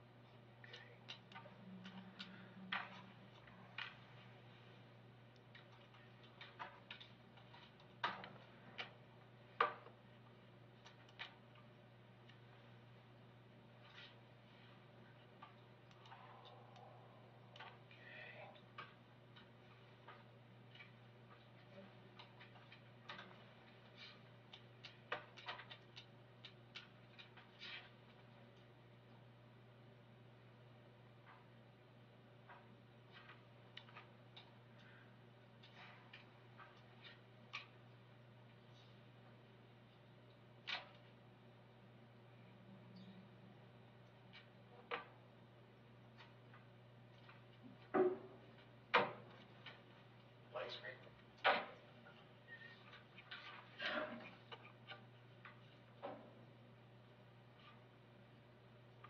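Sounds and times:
low electrical hum: 0:00.0 - 0:59.0
faint clicks and taps: 0:00.2 - 0:29.6, 0:30.4 - 0:41.3, 0:46.0 - 0:56.4.

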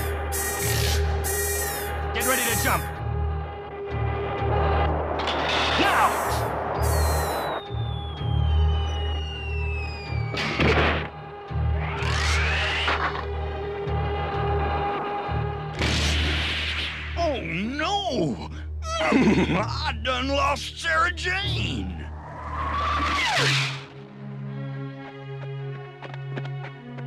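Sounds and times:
long falling whistle: 0:00.0 - 0:02.0, 0:06.7 - 0:10.5
music drone: 0:00.0 - 0:10.3.

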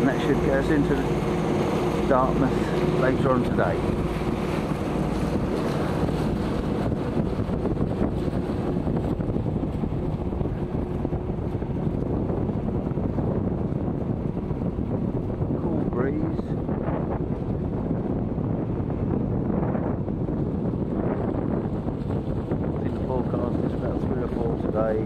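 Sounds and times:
water rushing past hull: 0:00.0 - 0:24.8
boat engine drone: 0:00.0 - 0:25.0
wind noise on microphone: 0:00.0 - 0:25.0.

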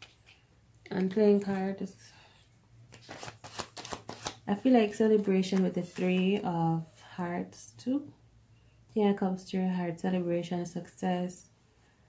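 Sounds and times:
playing cards being shuffled: 0:02.9 - 0:06.5.

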